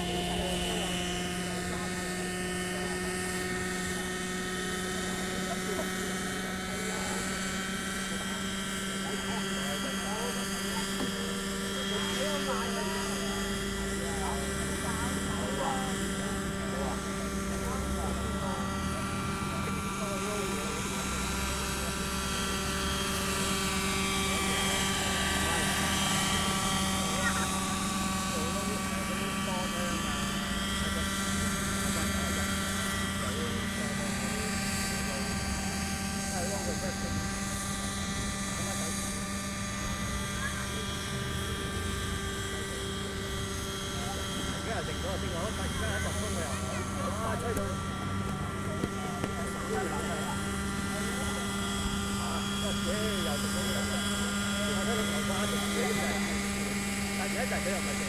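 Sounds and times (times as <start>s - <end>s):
model helicopter engine whine: 0.0s - 58.0s.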